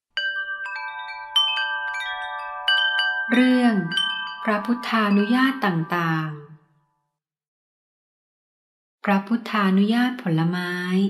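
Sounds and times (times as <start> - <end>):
chimes ringing: 0.0 - 7.0.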